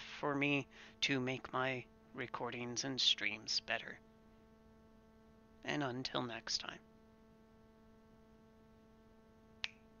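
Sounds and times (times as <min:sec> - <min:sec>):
faint steady hum: 0:00.0 - 0:10.0
sharp click: 0:09.6 - 0:09.9.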